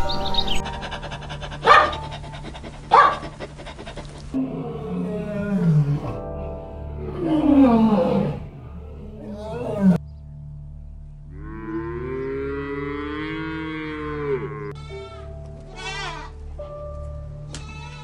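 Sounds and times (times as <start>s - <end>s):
ambient music drone: 0.0s - 18.0s
cow mooing: 4.3s - 6.3s, 7.0s - 10.0s, 11.3s - 15.0s
goat bleating: 14.8s - 16.4s, 17.5s - 18.0s.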